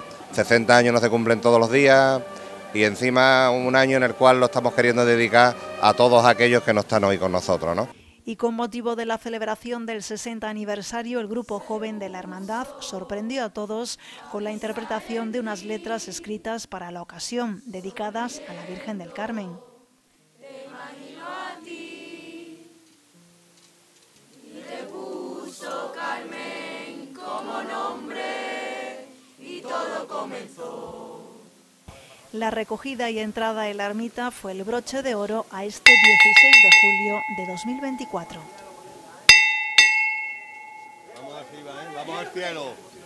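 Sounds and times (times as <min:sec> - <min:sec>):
group of young people singing: 0:11.2 - 0:16.6, 0:17.7 - 0:22.9, 0:24.4 - 0:31.6
bell ringing: 0:35.9 - 0:41.7.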